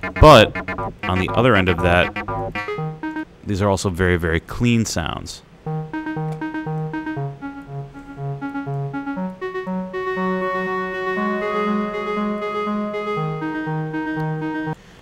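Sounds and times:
synth electric piano notes: 0.0s - 3.2s, 5.7s - 14.8s.

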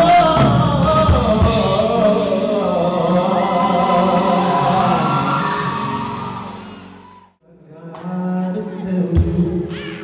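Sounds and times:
live stage music: 0.0s - 10.0s.

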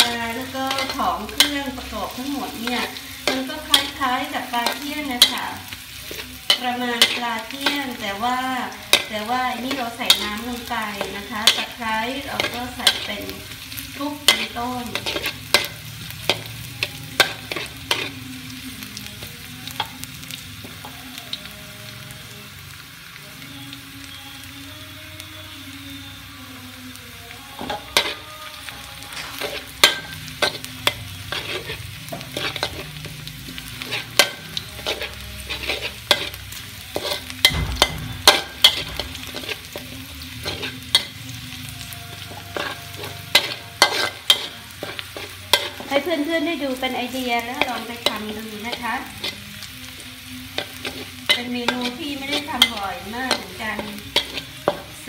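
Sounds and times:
spatula scraping a wok: 0.0s - 18.5s, 27.6s - 55.0s
shallots and garlic sizzling in oil: 0.0s - 55.0s.

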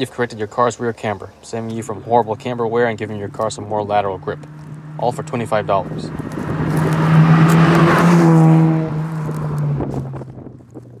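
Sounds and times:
rotary engine car driving past: 1.8s - 10.4s.

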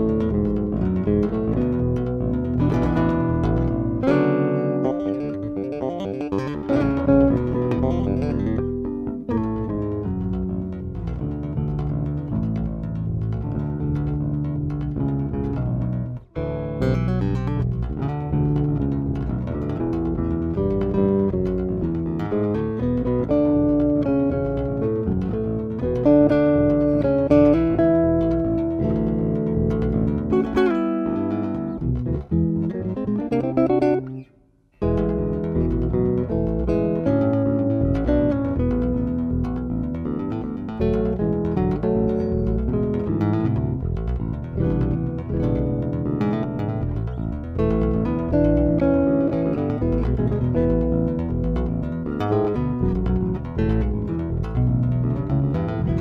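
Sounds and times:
electric basses playing: 0.0s - 56.0s.

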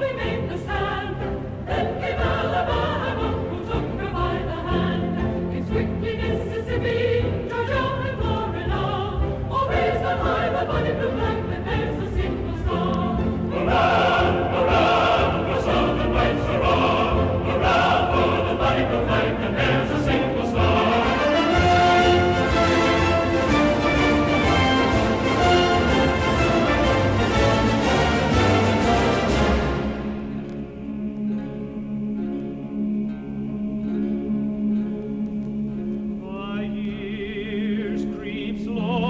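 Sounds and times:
choir singing a slow song: 0.0s - 39.0s
orchestral accompaniment: 0.0s - 39.0s.

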